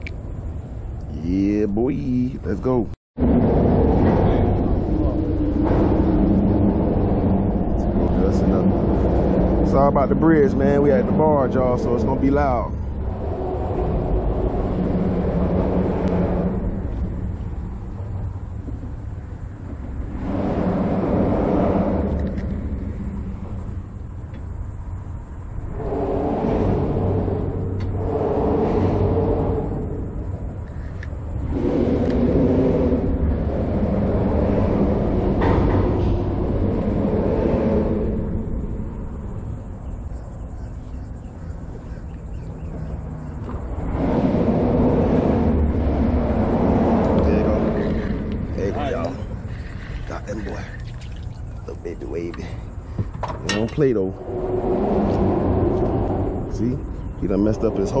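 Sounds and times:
traffic rumbling over bridge: 0.0s - 58.0s.

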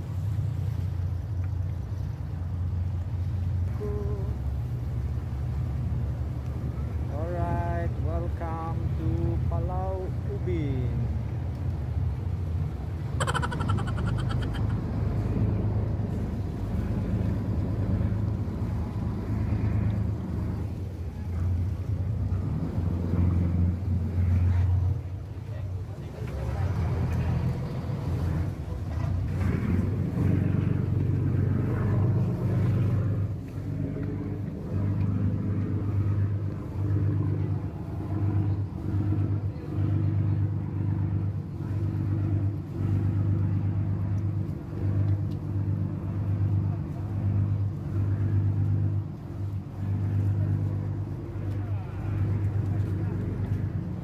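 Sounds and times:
boat engine humming: 0.0s - 54.0s.

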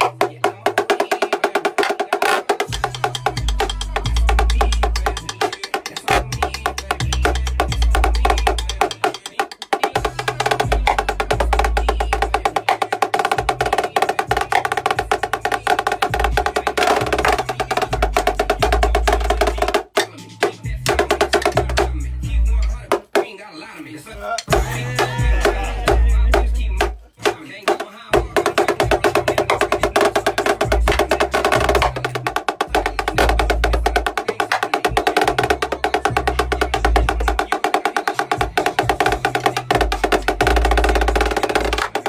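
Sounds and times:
rapid snare drum strokes: 0.0s - 22.0s, 24.4s - 42.0s
hip hop track with heavy bass: 0.0s - 42.0s.

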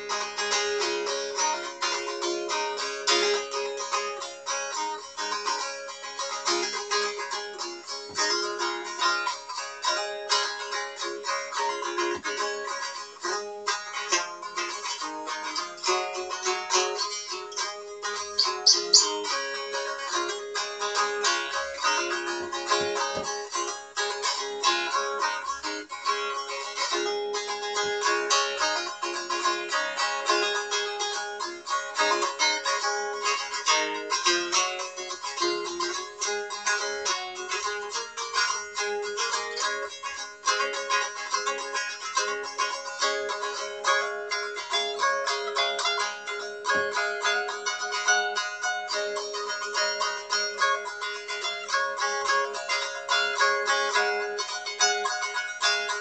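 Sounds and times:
stick dulcimer strummed: 0.0s - 56.0s.

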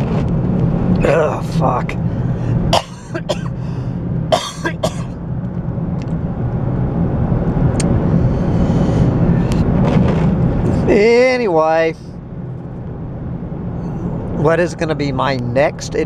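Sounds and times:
car cabin engine hum: 0.0s - 16.0s
man coughing: 2.7s - 3.6s, 4.3s - 5.2s.

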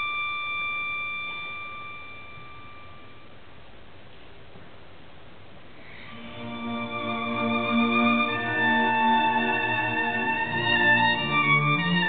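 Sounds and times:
violin long high note: 0.0s - 3.3s, 5.9s - 12.0s.

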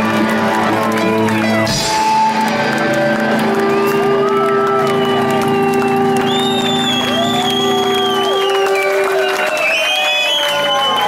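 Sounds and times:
crowd cheering with whoops: 0.0s - 11.0s.

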